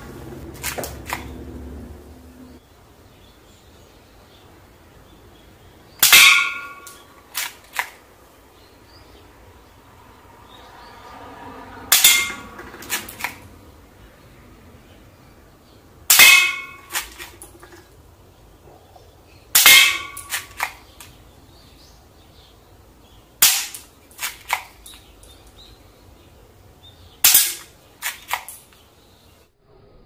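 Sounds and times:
toy pistol shots: 0.6s - 1.4s, 6.0s - 8.0s, 11.9s - 13.4s, 16.1s - 17.5s, 19.6s - 21.2s, 23.4s - 25.0s, 27.2s - 28.7s.

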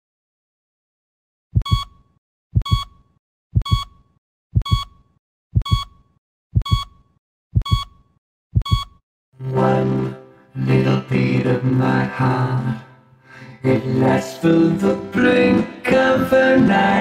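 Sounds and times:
heartbeat thumps: 1.6s - 1.9s, 2.6s - 3.0s, 3.6s - 4.0s, 4.6s - 5.0s, 5.6s - 7.9s, 8.5s - 9.0s
heart monitor beep: 1.6s - 9.0s
music: 9.4s - 17.0s.

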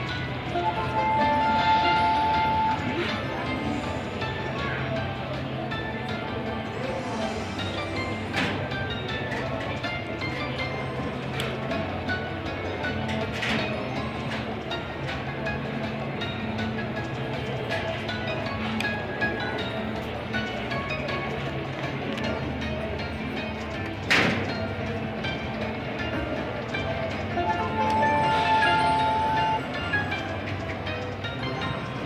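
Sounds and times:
slot machine bonus music: 0.1s - 4.2s, 26.5s - 32.0s.

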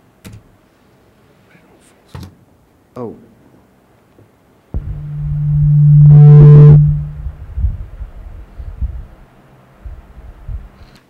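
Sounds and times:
loud low tone from speakers: 4.8s - 8.4s.

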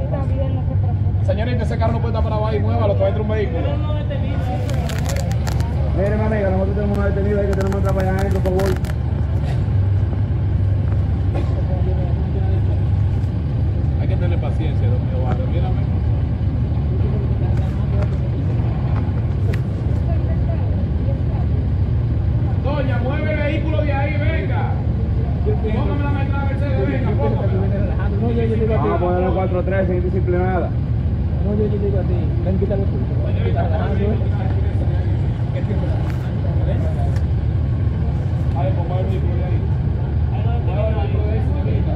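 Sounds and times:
car engine running: 0.0s - 41.9s
voices talking: 0.0s - 41.9s.

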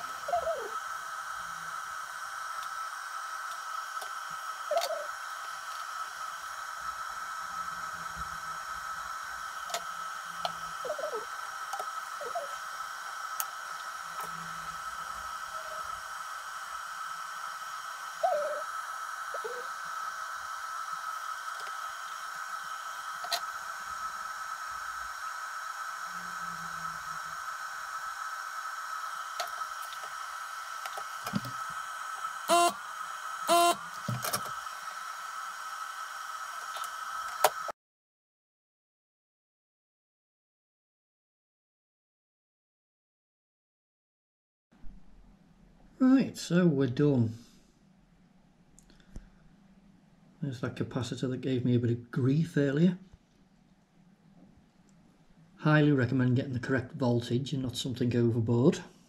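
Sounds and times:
background hiss: 0.0s - 37.8s, 44.8s - 59.0s
high-pitched whine: 0.0s - 37.8s.

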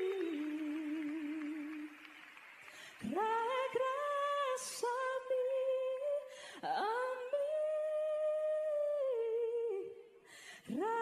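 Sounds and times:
breath: 2.6s - 3.0s, 6.3s - 6.6s, 10.2s - 10.7s.

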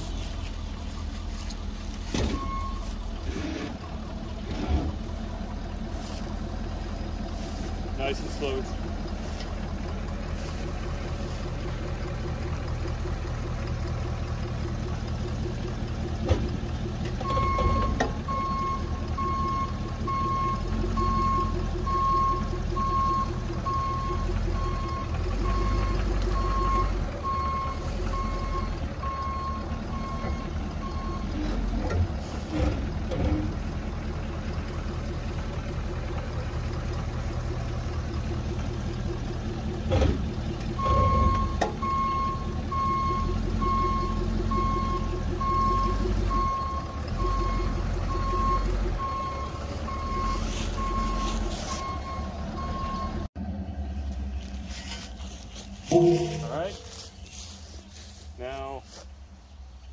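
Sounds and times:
pickup truck engine running: 0.0s - 59.9s
reversing alarm beeping: 2.1s - 3.0s, 17.2s - 31.4s, 40.8s - 53.3s, 55.9s - 56.9s.

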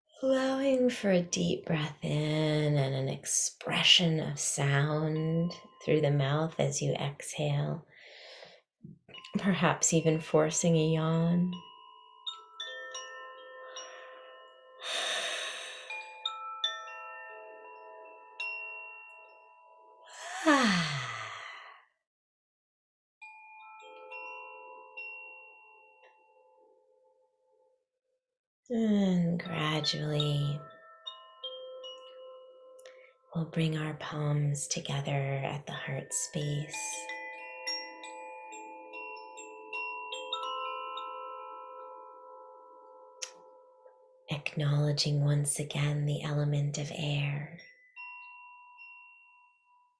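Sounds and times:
person yawning loudly: 20.1s - 21.8s.

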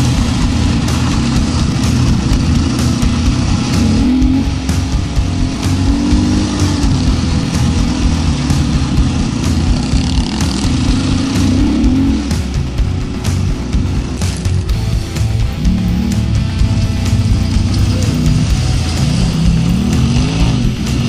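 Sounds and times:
off-road vehicle engine revving: 0.0s - 21.0s.

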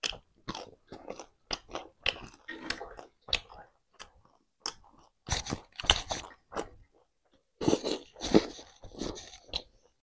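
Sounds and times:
chewing and crunching food: 0.0s - 10.0s.

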